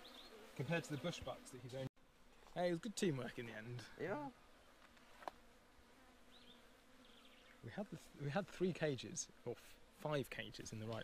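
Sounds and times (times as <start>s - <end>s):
faint insect buzz: 0.0s - 11.0s.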